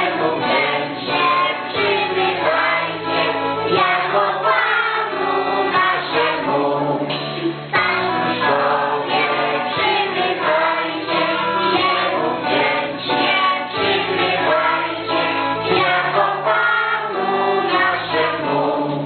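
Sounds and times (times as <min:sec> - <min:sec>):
children singing a carol: 0:00.0 - 0:19.0
instrumental accompaniment: 0:00.0 - 0:19.0.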